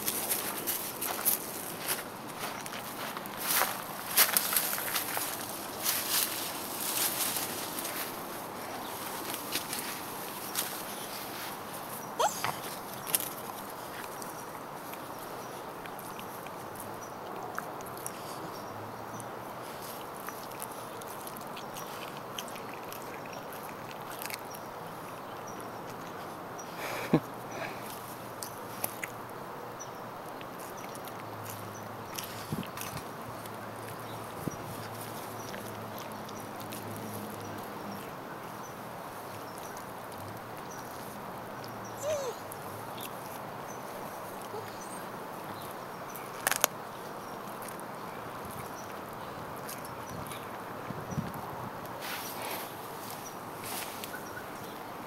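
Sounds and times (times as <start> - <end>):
dog gnawing on bone: 19.3 - 26.3, 30.2 - 41.6, 45.3 - 50.6
background hiss: 51.5 - 55.0.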